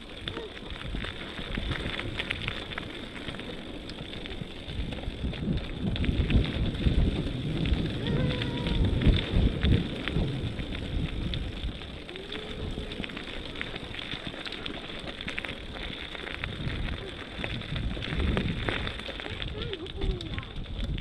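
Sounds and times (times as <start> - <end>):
bicycle tyres crunching gravel: 0.0 - 21.0
bike rattling: 0.0 - 21.0
wind on microphone: 0.0 - 21.0.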